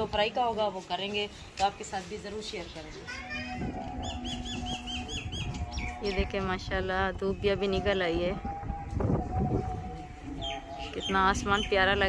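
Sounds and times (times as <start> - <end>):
low rumble: 3.6 - 12.0.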